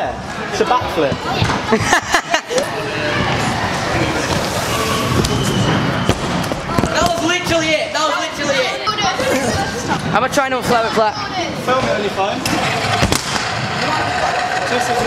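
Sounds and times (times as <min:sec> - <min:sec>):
voices in echoing hall: 0:00.0 - 0:15.0
scooter wheels rolling on ramp: 0:12.4 - 0:15.0
sharp clatter: 0:12.5 - 0:15.0.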